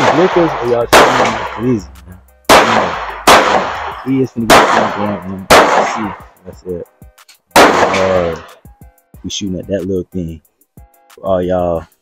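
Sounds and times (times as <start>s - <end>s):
loud gunshots with echo: 0.0s - 1.8s, 2.5s - 6.3s, 7.6s - 8.5s.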